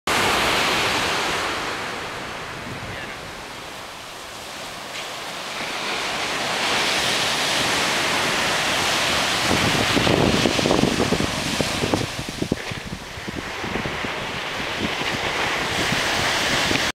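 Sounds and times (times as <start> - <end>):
ocean surf breaking on beach: 0.1 - 16.9
wind on microphone: 0.1 - 16.9.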